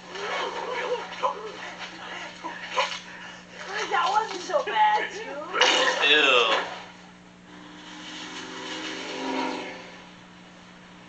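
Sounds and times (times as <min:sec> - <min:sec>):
steady low hum: 0:00.0 - 0:11.0
vehicle engine rising in pitch: 0:07.5 - 0:10.2.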